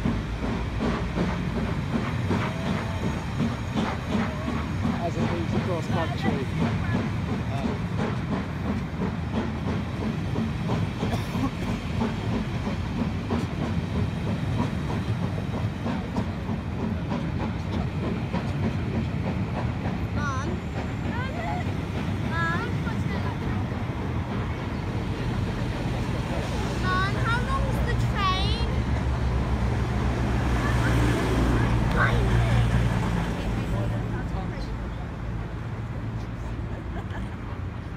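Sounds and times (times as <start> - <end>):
train coaches rumbling on rails: 0.0 - 37.9.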